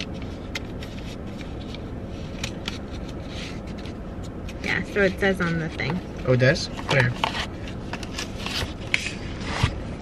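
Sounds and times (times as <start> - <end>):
paper cups scraping and rubbing: 0.0 - 9.8.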